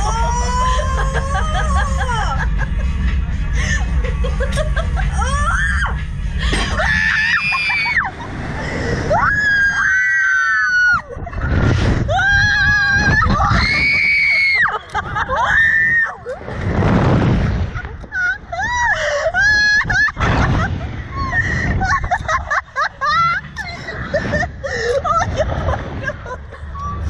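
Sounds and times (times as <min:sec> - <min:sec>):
women screaming: 0:00.0 - 0:02.5, 0:05.1 - 0:06.0, 0:06.7 - 0:08.2, 0:09.1 - 0:11.2, 0:12.1 - 0:16.4
wind rushing on microphone: 0:10.9 - 0:22.5.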